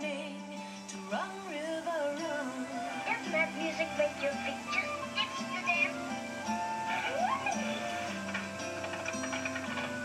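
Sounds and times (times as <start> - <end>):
film music on television: 0.0 - 10.0.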